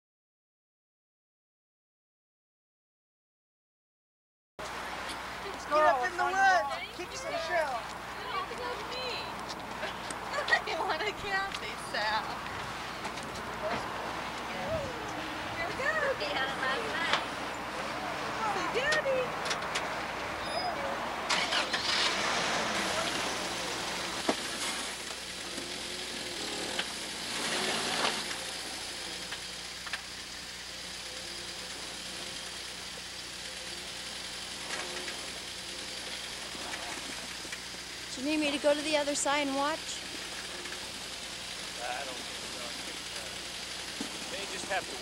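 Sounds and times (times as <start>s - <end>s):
voices chatting: 4.8s - 27.2s, 28.2s - 45.0s
pickup truck engine running: 21.2s - 45.0s.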